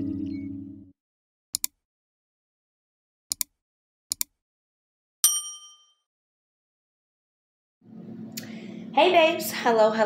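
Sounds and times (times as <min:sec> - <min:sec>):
bell-like ding: 0:05.2 - 0:06.0.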